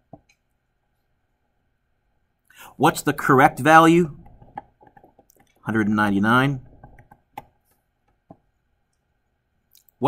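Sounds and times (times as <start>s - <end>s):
stylus tapping tablet screen: 3.6s - 8.5s.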